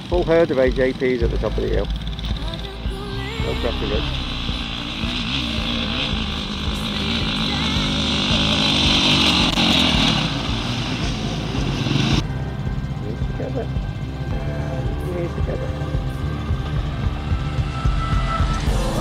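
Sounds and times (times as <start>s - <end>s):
motorcycle engines running: 0.0s - 19.0s
music with steady bass: 0.0s - 19.0s.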